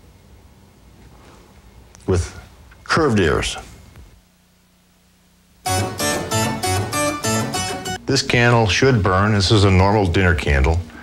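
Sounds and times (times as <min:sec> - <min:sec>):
guitar strumming chords: 0:05.6 - 0:08.0.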